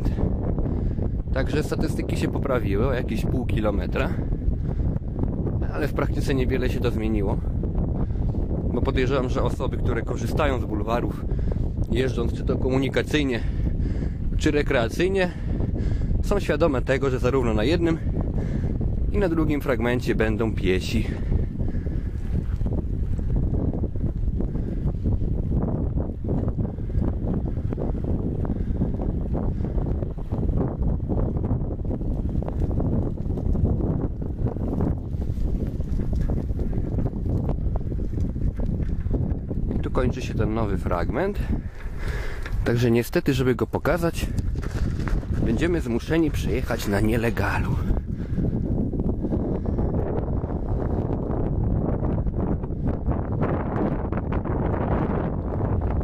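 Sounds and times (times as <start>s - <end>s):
low rumble of bicycle rolling: 0.0s - 56.0s
wind buffeting microphone: 0.0s - 56.0s
bicycle knocks and rattles: 44.4s - 45.5s.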